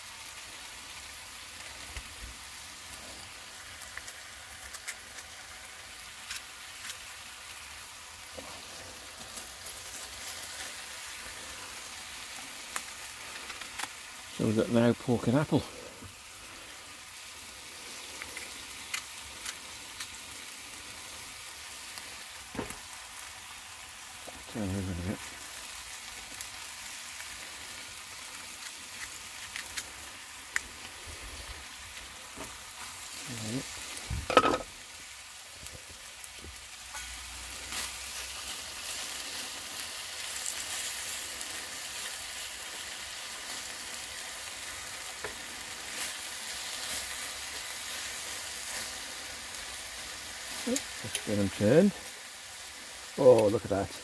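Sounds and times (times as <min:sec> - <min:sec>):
meat sizzling in a frying pan: 0:00.0 - 0:54.0.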